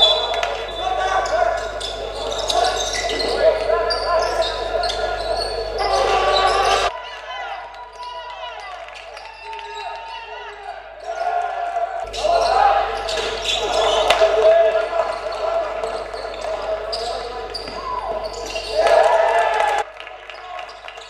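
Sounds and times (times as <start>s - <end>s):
shoes squeaking: 0.0s - 6.9s, 12.1s - 19.0s
voices echoing in hall: 0.0s - 21.0s.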